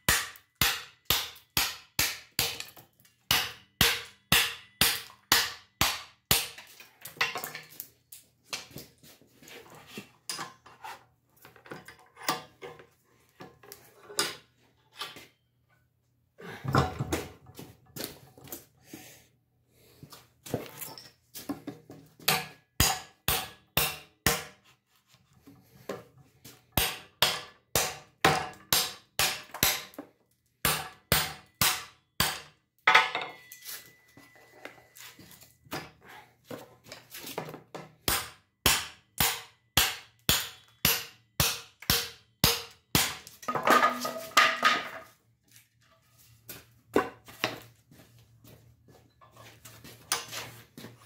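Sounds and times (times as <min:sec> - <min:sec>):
hammer striking knife spine: 0:38.1 - 0:43.3.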